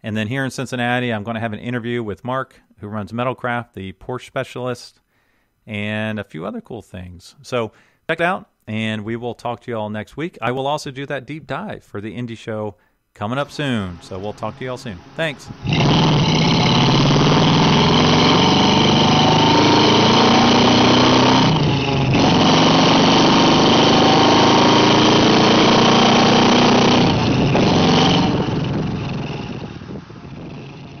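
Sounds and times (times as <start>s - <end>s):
car engine accelerating hard: 13.4s - 31.0s.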